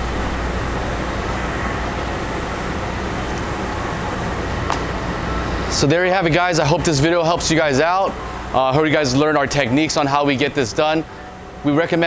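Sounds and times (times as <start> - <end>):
fan and ventilation hum: 0.0 - 12.0
thin steady high tone: 0.9 - 12.0.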